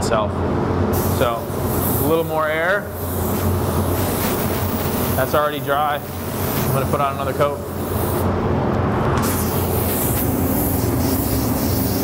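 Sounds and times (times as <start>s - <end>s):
steady low hum: 0.0s - 12.0s
compressed air hissing: 0.9s - 8.3s, 9.2s - 12.0s.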